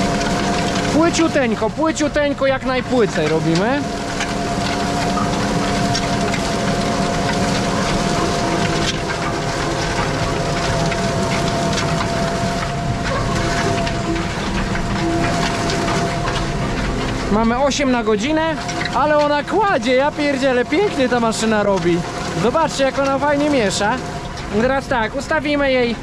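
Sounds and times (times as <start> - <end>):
constant high whine: 0.0 - 26.0
harrow discs cutting soil: 0.0 - 26.0
tractor engine drone under load: 0.0 - 26.0.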